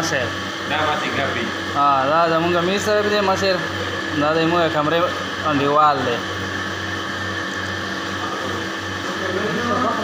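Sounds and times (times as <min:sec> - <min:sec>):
machinery droning hum: 0:00.0 - 0:10.0.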